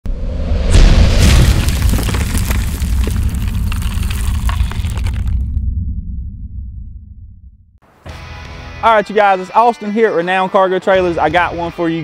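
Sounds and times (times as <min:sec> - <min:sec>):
deep boom: 0:00.1 - 0:07.8
low rumble: 0:00.1 - 0:07.8
cracking and shattering crackle: 0:01.2 - 0:05.6.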